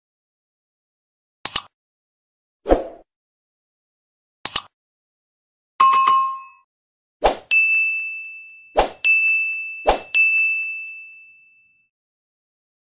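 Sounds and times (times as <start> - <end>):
bright bell-like ding: 7.5 - 11.9.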